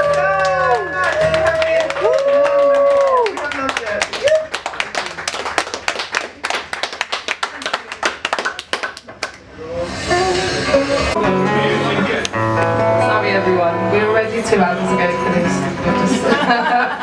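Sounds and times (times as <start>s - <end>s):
audience applauding: 0.0s - 9.5s.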